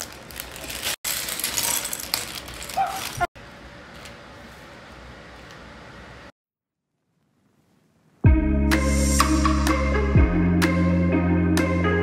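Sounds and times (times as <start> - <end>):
plastic bag crinkling: 0.0 - 3.3.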